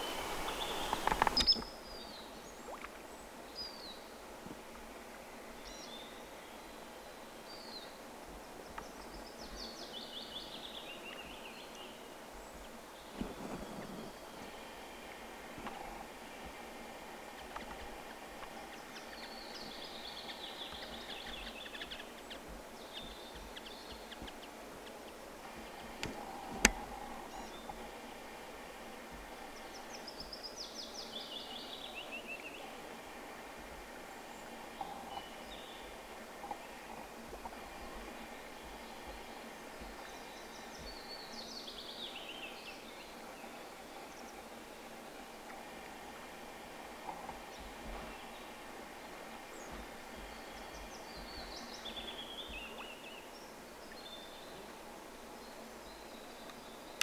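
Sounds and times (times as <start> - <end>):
outdoor ambience: 0.0 - 57.0.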